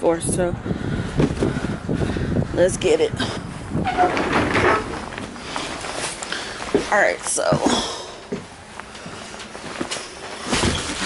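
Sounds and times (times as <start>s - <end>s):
cardboard boxes rustling: 4.1s - 7.8s, 8.9s - 11.0s.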